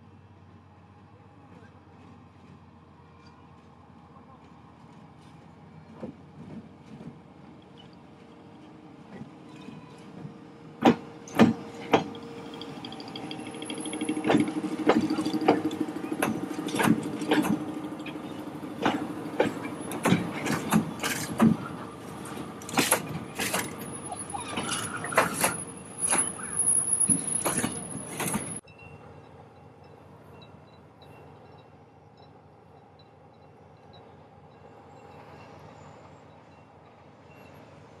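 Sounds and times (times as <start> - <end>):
train low running sound: 0.0 - 38.0.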